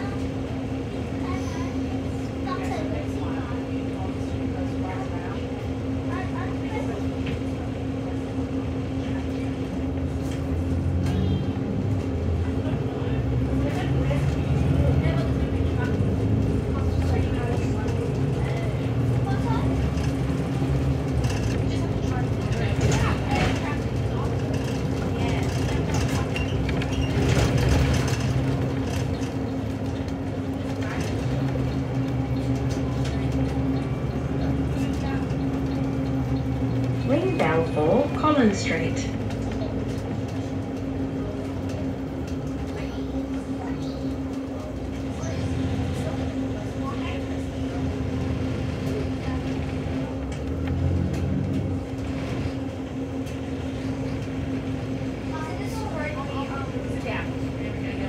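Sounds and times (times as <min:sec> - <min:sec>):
bus engine rumble: 0:00.0 - 0:58.0.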